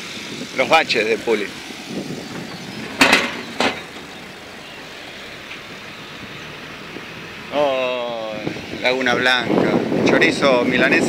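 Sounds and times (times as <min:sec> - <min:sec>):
motorcycle road and wind noise: 0:00.0 - 0:11.0
sharp knocks from potholes: 0:02.3 - 0:04.3.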